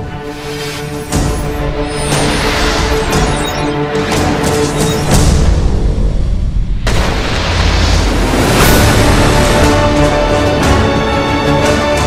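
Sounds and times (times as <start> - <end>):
cinematic theme music: 0.0 - 12.0.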